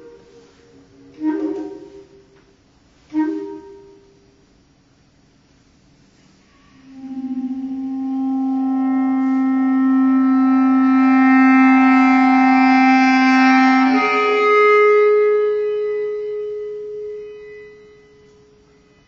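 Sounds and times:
bass clarinet held notes: 0.0 - 4.4, 6.4 - 19.0.

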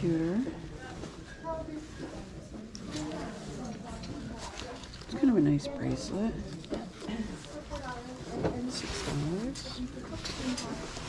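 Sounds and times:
faint people talking: 0.0 - 11.0.

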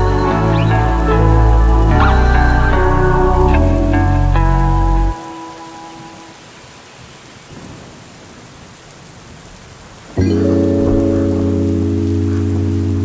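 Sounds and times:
rain hissing: 0.0 - 13.0
lofi hip-hop music: 10.2 - 13.0.

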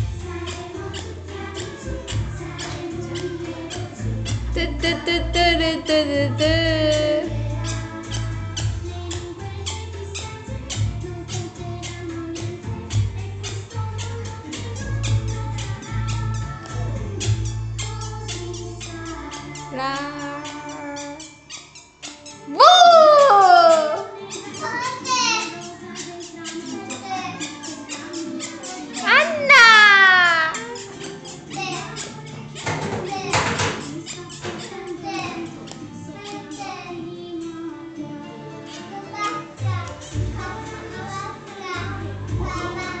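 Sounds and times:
children's voices: 0.0 - 12.6, 13.2 - 21.5, 22.1 - 43.0
music playing: 0.0 - 43.0
child calling high-pitched: 22.5 - 24.2, 29.0 - 30.8.

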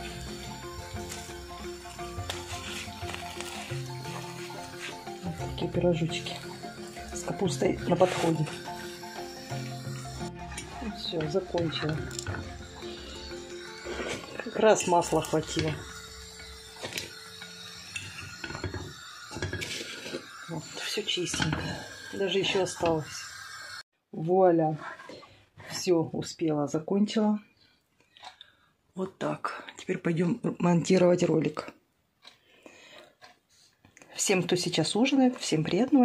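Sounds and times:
metal utensil scraping frying pan: 0.0 - 23.8
steady hum: 0.0 - 23.8.

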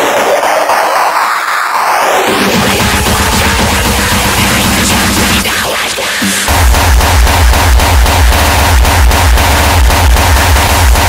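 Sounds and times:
hardcore electronic music: 0.0 - 11.0
heavy kick drum: 2.3 - 11.0.

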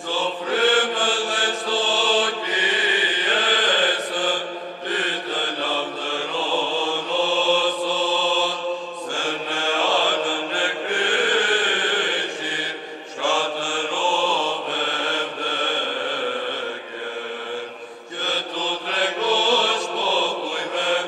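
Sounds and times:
choir chanting melody: 0.0 - 21.0.

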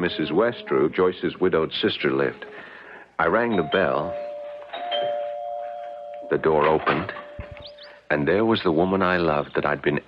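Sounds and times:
two-note doorbell chime: 3.5 - 6.5.

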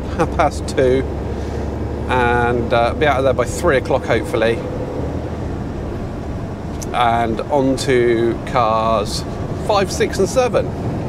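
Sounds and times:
lorry diesel engine rumble: 0.0 - 11.0.

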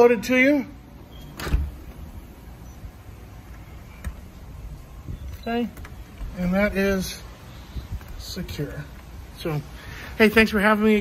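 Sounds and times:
door latch click: 1.2 - 2.0
door shutting thump: 1.2 - 2.1.

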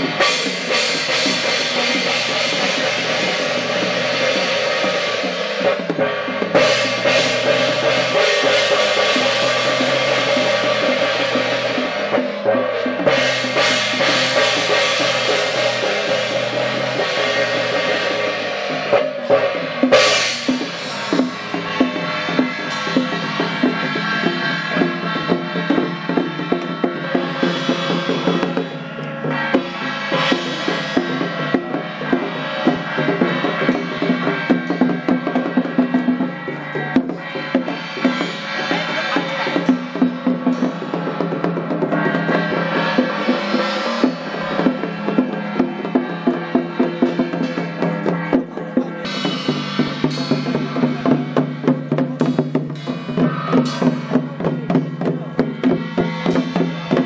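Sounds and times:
brass hand cymbals clashing: 0.0 - 57.0
drum beaten in quick strokes: 0.0 - 57.0.

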